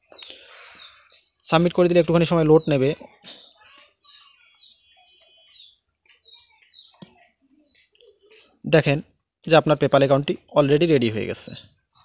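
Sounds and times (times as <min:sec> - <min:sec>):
small bird chirping: 0:00.0 - 0:12.0.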